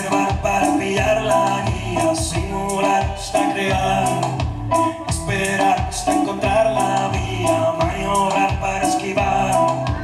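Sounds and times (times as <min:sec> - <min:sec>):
guitar: 0:00.0 - 0:10.0
percussion keeping a steady beat: 0:00.0 - 0:10.0.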